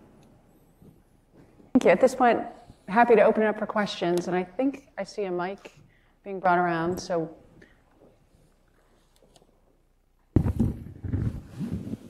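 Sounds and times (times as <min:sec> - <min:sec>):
microphone handling noise: 0:10.4 - 0:12.0.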